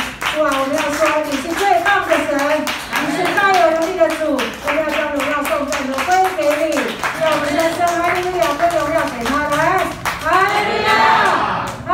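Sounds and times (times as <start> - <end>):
hand-clapping: 0.0 - 11.9.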